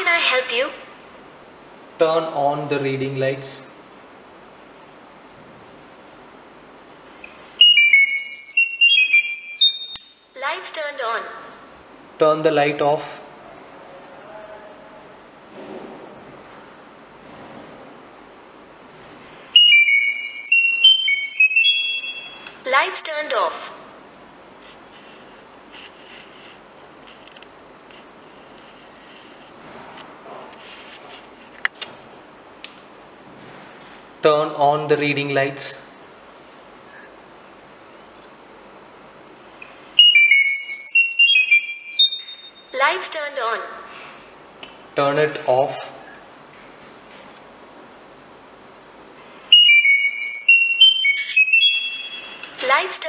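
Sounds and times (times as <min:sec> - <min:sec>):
short high electronic tones: 0:07.6 - 0:10.2, 0:19.6 - 0:22.7, 0:40.0 - 0:42.8, 0:49.5 - 0:52.7.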